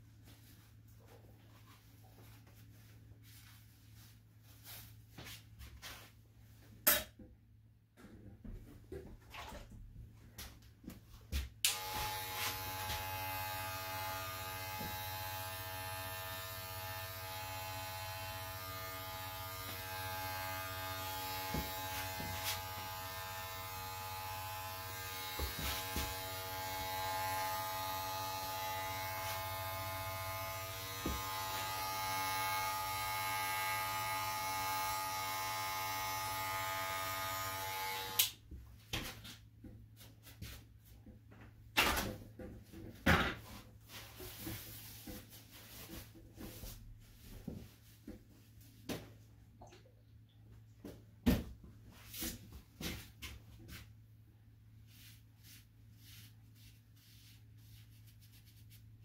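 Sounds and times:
electric hair clipper buzzing: 11.6 - 38.4.

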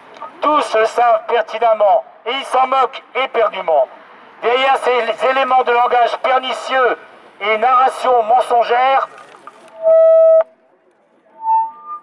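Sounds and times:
megaphone feedback squeal: 9.8 - 10.5, 11.4 - 12.0
shorter quieter tones: 11.4 - 12.0.

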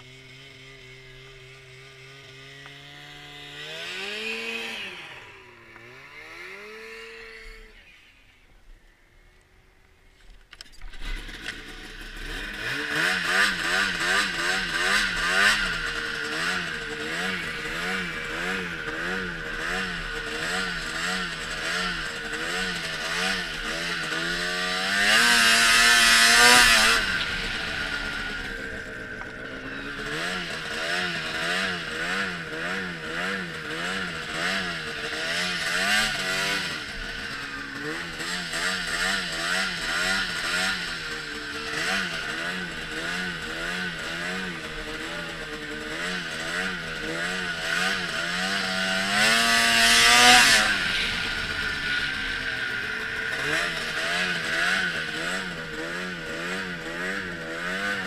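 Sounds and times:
snowmobile engine running: 0.0 - 7.9, 10.8 - 58.0.

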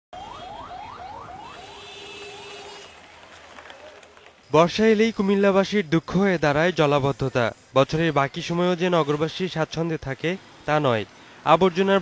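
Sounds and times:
ambulance siren yelping: 0.2 - 2.9
street traffic hiss: 1.6 - 12.0.

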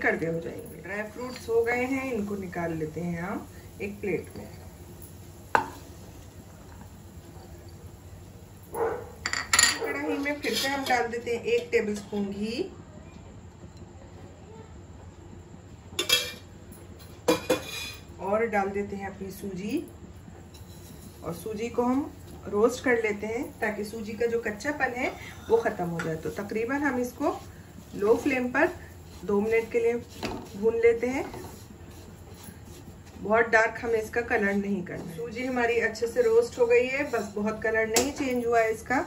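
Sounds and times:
spatula stirring semolina in pan: 20.5 - 38.1.

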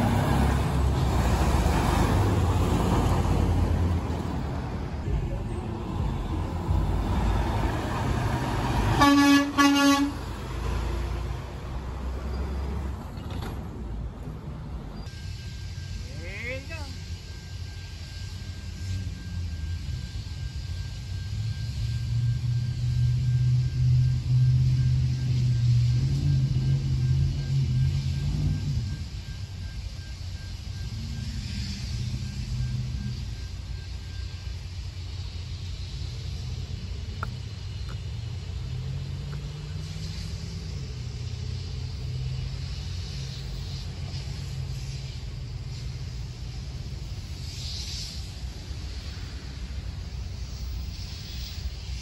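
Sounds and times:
low engine rumble: 0.0 - 52.0
faint high whine: 14.9 - 52.0.

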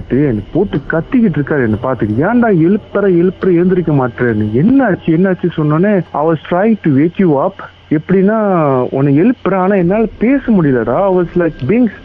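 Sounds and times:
person talking over phone line: 0.0 - 12.0.

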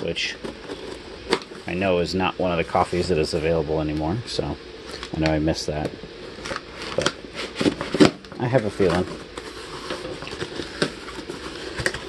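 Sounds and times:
cardboard flaps scraping and rustling: 6.3 - 12.0.

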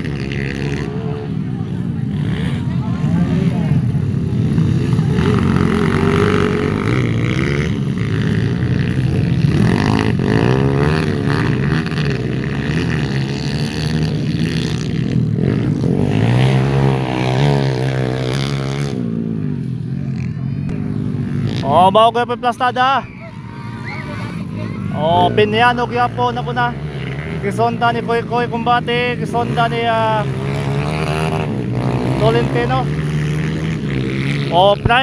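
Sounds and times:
dirt bike engines racing past: 0.0 - 35.0.

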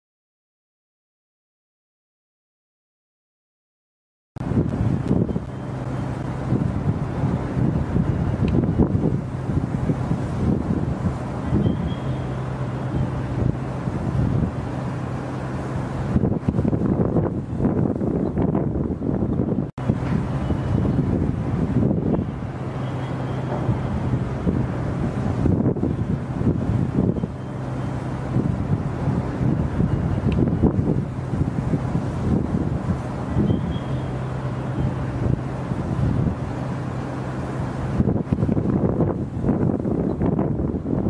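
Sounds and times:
steady low hum: 4.4 - 41.0
wind buffeting microphone: 4.4 - 41.0.

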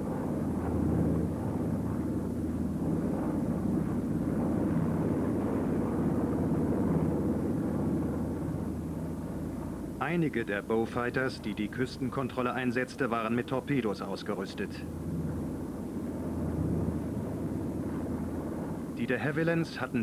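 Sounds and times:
propeller aircraft droning: 0.0 - 20.0.

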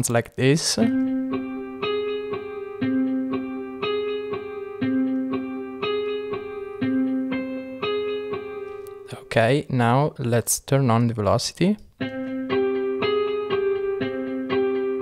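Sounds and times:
synthesizer plucked melody: 0.7 - 9.4.

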